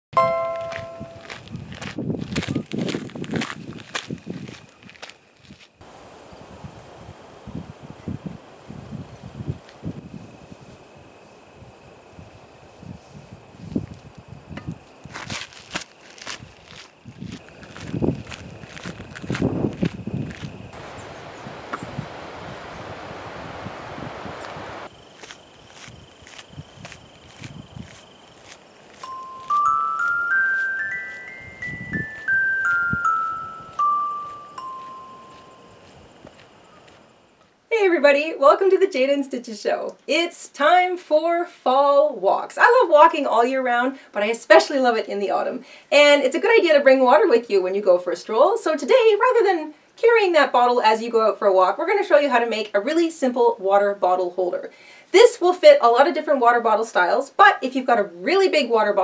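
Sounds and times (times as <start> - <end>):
faint high tone: 0.2 - 1.3, 29.0 - 35.8
bright chime: 0.2 - 1.4, 29.0 - 35.8
footsteps on gravel: 0.4 - 5.9, 14.8 - 21.1, 24.4 - 37.1
rushing noise: 20.7 - 24.9.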